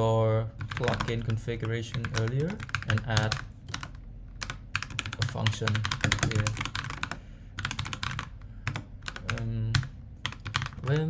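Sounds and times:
typing on computer keyboard: 0:00.6 - 0:11.0.

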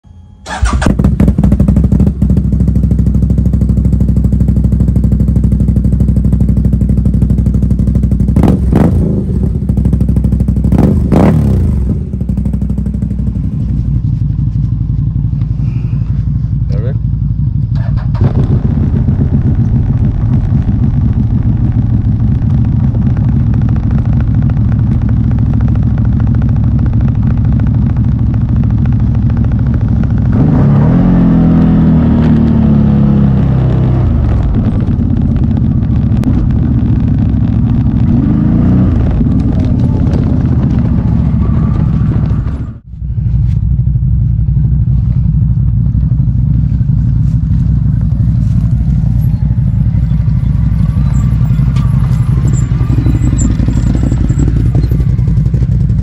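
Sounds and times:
atv engine idling: 0:00.4 - 0:56.0.

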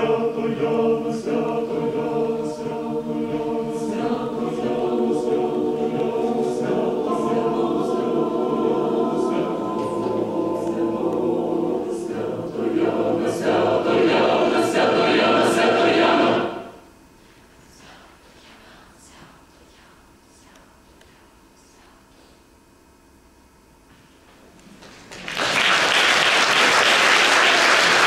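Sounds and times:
mixed choir singing a cappella: 0:00.0 - 0:16.9.

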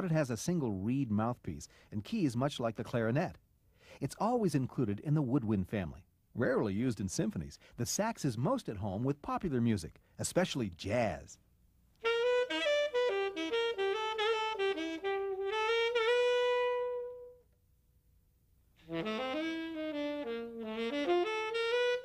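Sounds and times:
alto saxophone melody: 0:12.0 - 0:17.5, 0:18.8 - 0:22.0.

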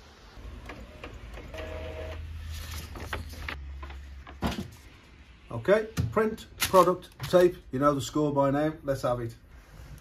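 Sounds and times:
printer motor hum: 0:00.4 - 0:02.4.

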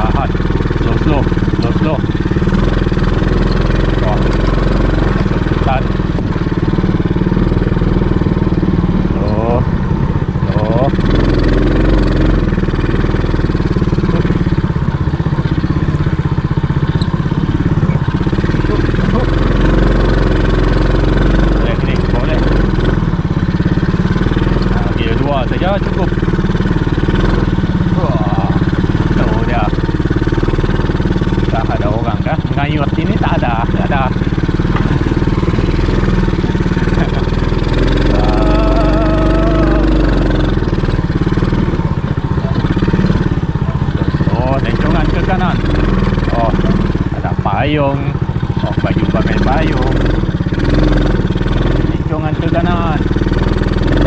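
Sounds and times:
small engine running: 0:00.0 - 0:54.0.

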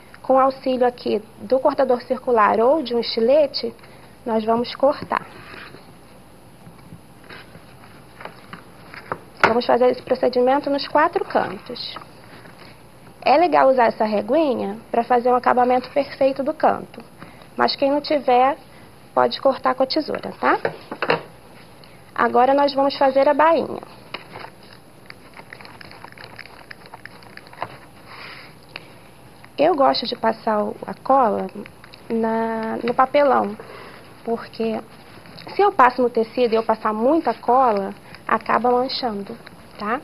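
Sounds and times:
soft rustles of handling: 0:04.9 - 0:13.2, 0:20.2 - 0:40.0.

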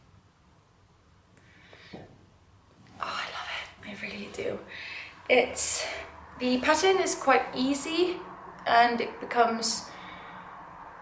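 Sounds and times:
woman whispering: 0:03.0 - 0:04.7.

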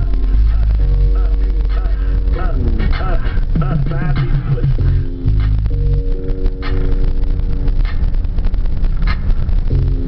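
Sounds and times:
car engine and road rumble: 0:00.0 - 0:10.0
synth music with heavy bass: 0:00.0 - 0:10.0.

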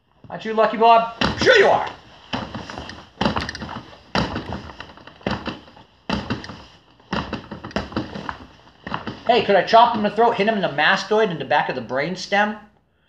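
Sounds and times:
strikes thudding on training dummy: 0:01.2 - 0:09.2.

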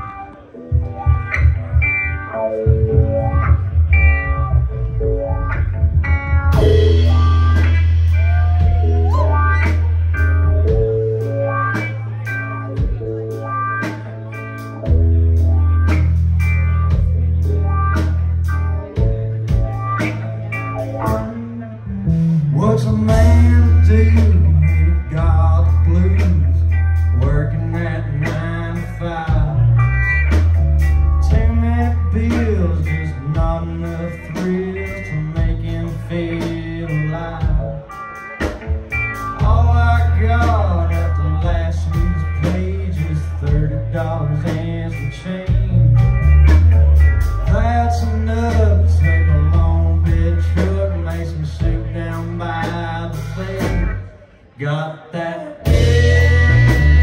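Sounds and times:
bass guitar: 0:00.0 - 0:57.0
electric guitar: 0:00.0 - 0:57.0
drum kit and cymbals: 0:06.0 - 0:21.4, 0:55.7 - 0:57.0.

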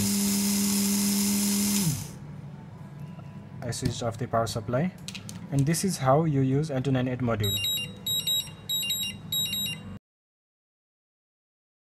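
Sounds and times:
electronic alarm beeping: 0:07.4 - 0:10.0.

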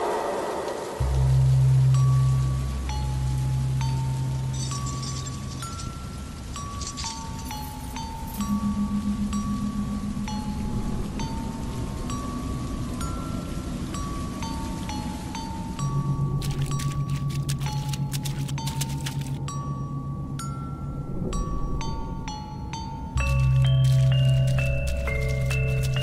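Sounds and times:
low hum: 0:00.0 - 0:26.0
struck metallophone notes: 0:19.4 - 0:26.0.

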